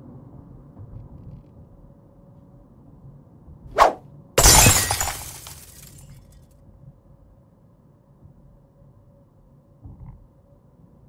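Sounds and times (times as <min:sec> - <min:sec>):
swish: 0:03.8 - 0:04.0
glass pieces tinkling: 0:04.4 - 0:06.0
glass shattering: 0:04.4 - 0:06.0.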